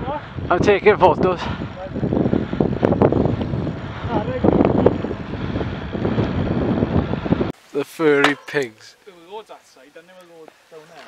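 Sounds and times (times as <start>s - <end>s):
wind buffeting microphone: 0.0s - 7.6s.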